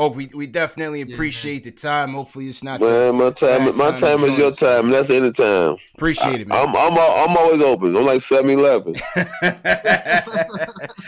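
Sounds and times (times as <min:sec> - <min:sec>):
men laughing: 0:02.9 - 0:04.6, 0:09.0 - 0:11.0.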